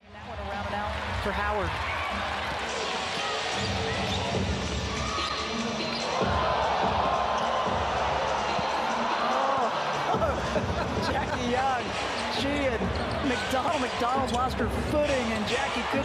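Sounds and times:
arena crowd noise: 0.0 - 16.0.

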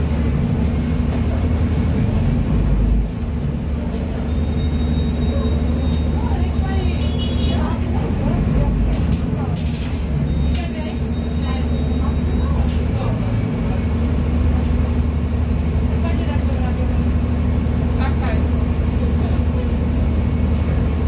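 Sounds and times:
bus diesel engine droning: 0.0 - 21.0.

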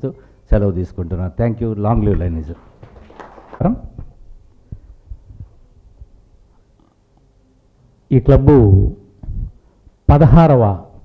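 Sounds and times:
faint hum: 0.0 - 11.0
microphone handling thumps: 1.9 - 6.7, 9.2 - 9.6.

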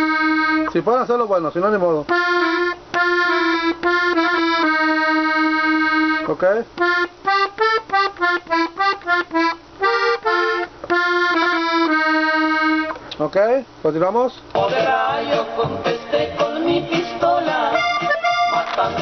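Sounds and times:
button accordion melody: 0.0 - 0.8, 2.1 - 13.0, 14.6 - 19.0.

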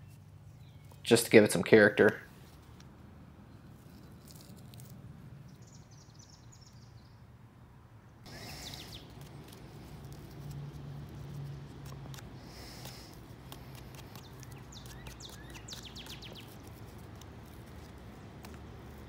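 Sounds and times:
faint bird chirps: 8.3 - 9.2.

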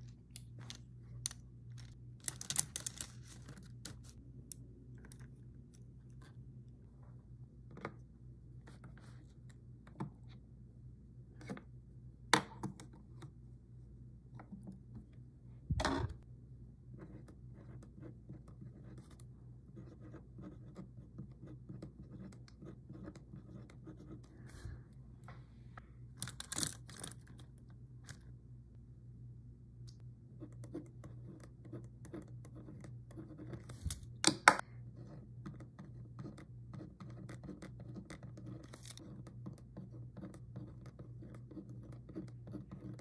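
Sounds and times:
pen scratching on paper: 17.0 - 24.6, 35.0 - 43.0.

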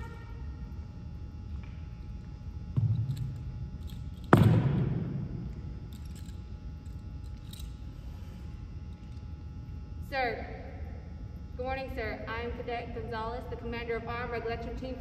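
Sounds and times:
knocks on wooden gym floor: 2.8 - 3.1.

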